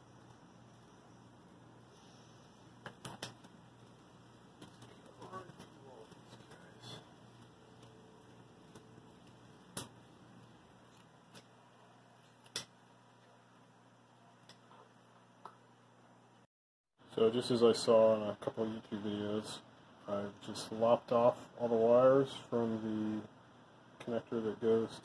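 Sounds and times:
faint low hum: 0.0 - 25.0.

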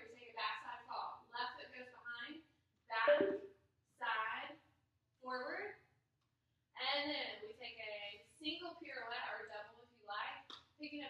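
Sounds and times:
woman speaking: 0.0 - 3.4.

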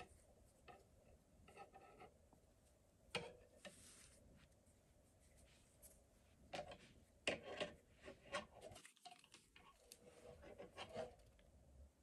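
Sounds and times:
faint rustling of yarn: 0.0 - 11.4.

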